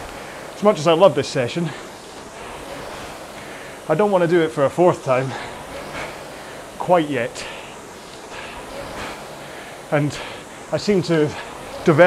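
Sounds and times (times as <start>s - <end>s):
rowing machine flywheel whoosh: 0.0s - 12.0s.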